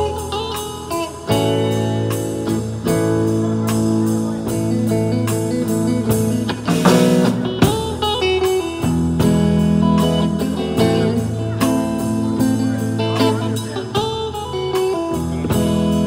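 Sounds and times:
drum kit beat: 0.0s - 16.0s
electric guitars: 0.0s - 16.0s.

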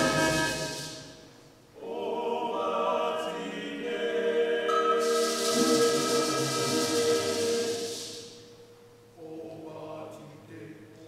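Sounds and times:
choir holding a sustained chord: 0.0s - 8.5s
steady hiss: 0.0s - 10.9s.

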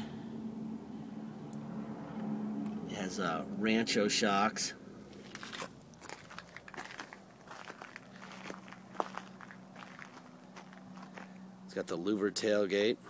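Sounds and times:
footsteps on gravel: 5.1s - 11.5s.

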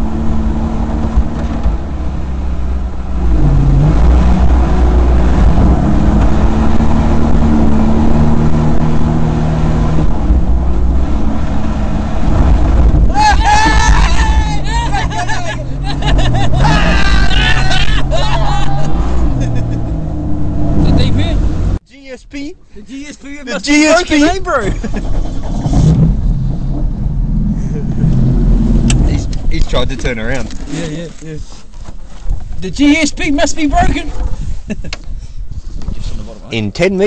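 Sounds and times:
jet boat engine rumble: 23.9s - 30.7s
wind buffeting microphone: 33.6s - 36.4s.

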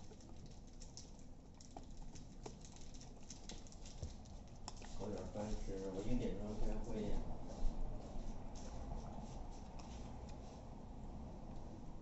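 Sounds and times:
teeth clicking on bone: 0.0s - 5.3s
puppy chewing: 0.0s - 10.7s.

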